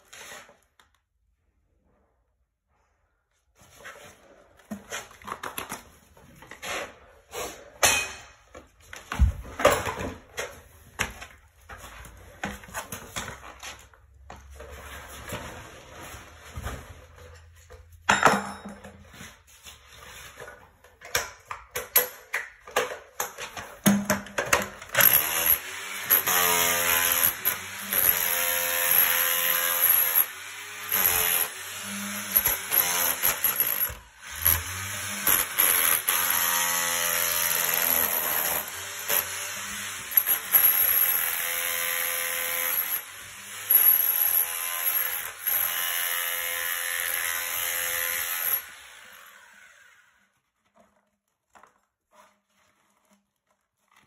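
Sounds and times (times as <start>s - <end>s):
power chisel breaking concrete: 23.9s - 49.9s.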